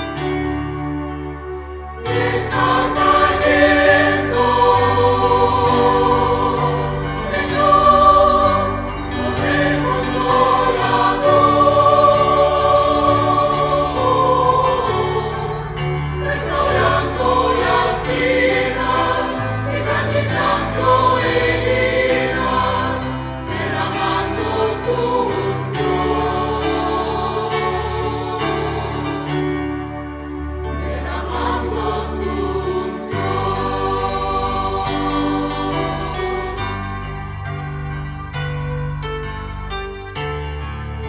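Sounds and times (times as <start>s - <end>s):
choir singing long notes: 0.0s - 38.2s.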